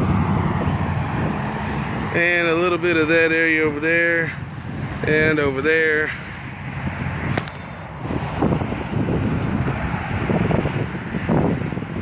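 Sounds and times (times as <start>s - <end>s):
low hum of traffic: 0.0s - 12.0s
wind buffeting microphone: 0.0s - 12.0s.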